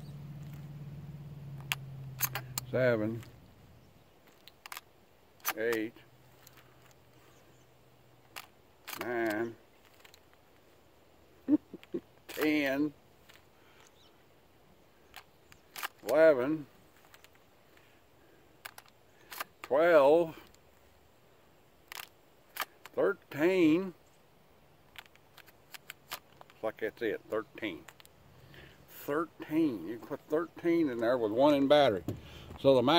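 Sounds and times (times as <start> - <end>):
steady low hum: 0.0 - 19.6
shell clicking into shotgun magazine: 1.6 - 3.3, 4.3 - 5.8, 8.2 - 10.4, 15.0 - 16.2, 18.6 - 19.7, 21.8 - 23.0, 24.9 - 26.6.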